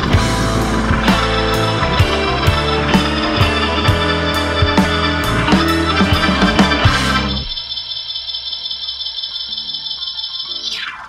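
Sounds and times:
rock band playing: 0:00.0 - 0:07.6.

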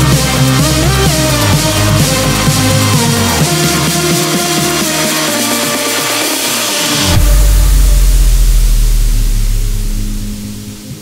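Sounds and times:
electronic dance drums: 0:00.0 - 0:11.0
held synth note: 0:03.2 - 0:11.0
hissing noise wash: 0:03.3 - 0:11.0
deep bass boom: 0:07.0 - 0:11.0.

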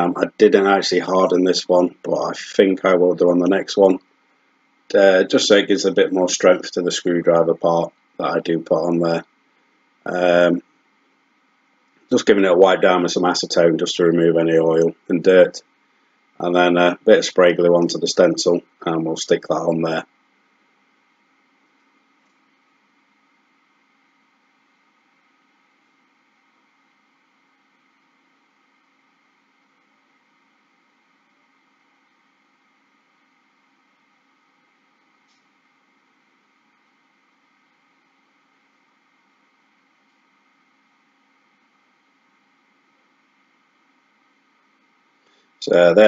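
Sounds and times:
faint background hiss and hum: 0:00.0 - 0:46.0.

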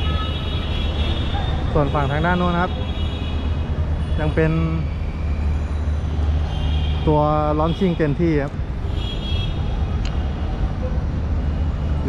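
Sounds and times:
city street traffic rumble: 0:00.0 - 0:12.0.

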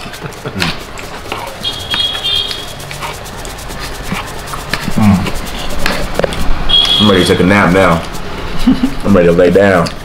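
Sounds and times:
high squeal: 0:06.7 - 0:07.6.

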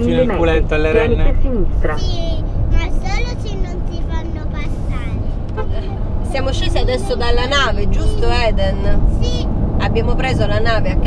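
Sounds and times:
road and engine rumble in van: 0:00.0 - 0:11.0
voices: 0:00.0 - 0:11.0.

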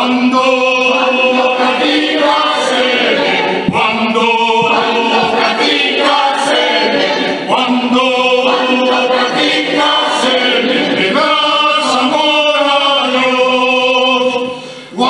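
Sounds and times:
mixed choir singing a hymn: 0:00.0 - 0:15.0.

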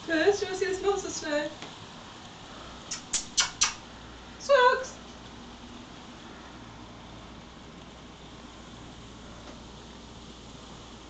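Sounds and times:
faint background hiss: 0:00.0 - 0:11.0
sharp clicks: 0:02.9 - 0:03.8.

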